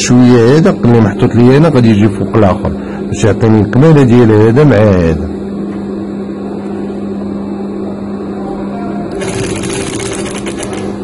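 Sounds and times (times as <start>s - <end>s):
sewing machine humming: 9.1s - 11.0s
sewing machine needle stitching: 9.1s - 11.0s.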